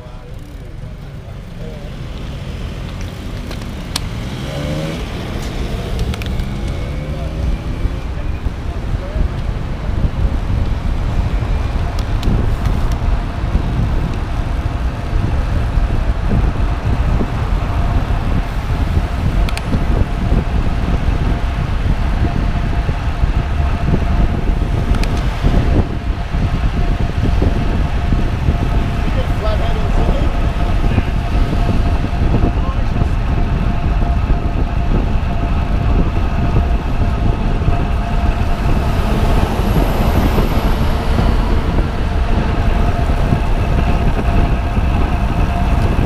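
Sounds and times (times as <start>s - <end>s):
road traffic: 0.0s - 46.0s
wind rushing over microphone: 0.0s - 46.0s.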